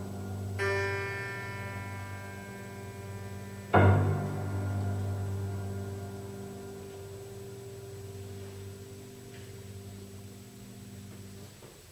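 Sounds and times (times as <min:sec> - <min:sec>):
piano strings ringing: 0:00.0 - 0:11.9.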